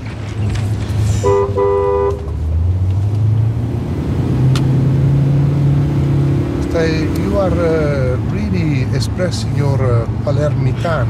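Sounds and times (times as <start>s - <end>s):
car horn blasts: 1.2s - 2.4s.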